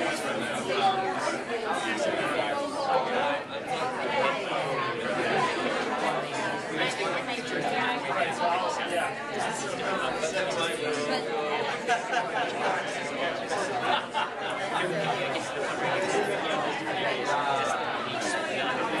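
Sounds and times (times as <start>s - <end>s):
crowd chatter: 0.0s - 19.0s.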